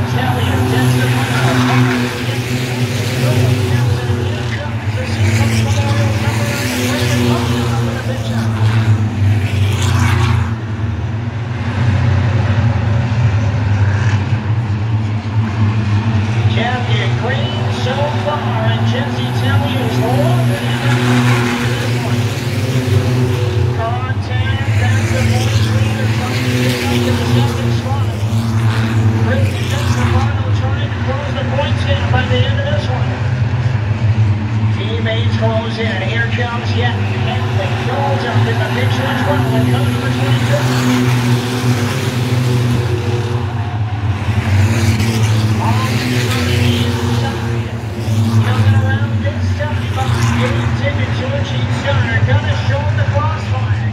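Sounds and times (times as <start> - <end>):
cars passing close: 0.0 - 53.9
stock car engines droning: 0.0 - 53.9.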